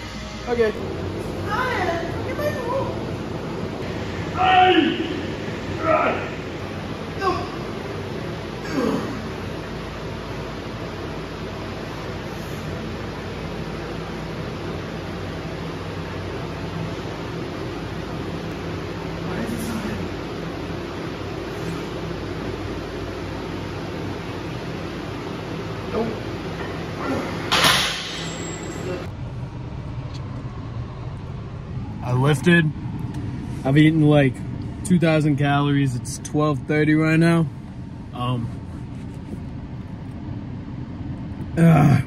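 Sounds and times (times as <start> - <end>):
steady fan noise: 0.0 - 42.0.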